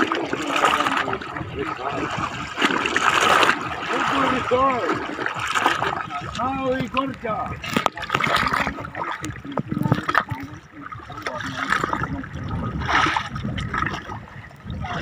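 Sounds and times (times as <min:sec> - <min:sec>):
men talking and calling: 0:00.0 - 0:12.9
sea water splashing and sloshing: 0:00.0 - 0:15.0
swimmer moving in water: 0:00.0 - 0:15.0.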